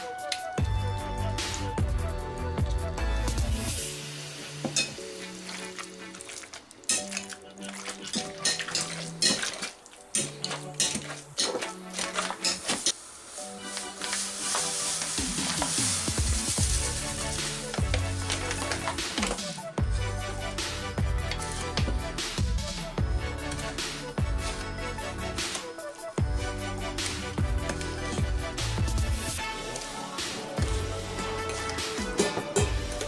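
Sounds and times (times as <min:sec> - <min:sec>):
background music: 0:00.0 - 0:33.0
hissing rustle: 0:12.4 - 0:19.6.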